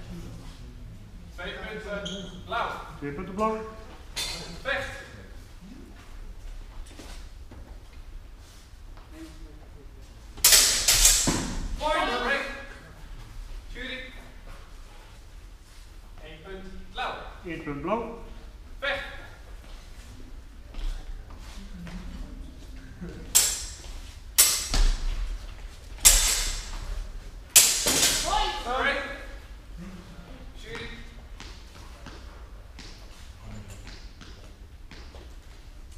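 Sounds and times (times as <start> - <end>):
steel swords clashing: 4.2 - 4.6, 10.4 - 11.6, 23.3 - 25.0, 26.0 - 26.9, 27.5 - 28.7
person shouting: 28.2 - 28.7.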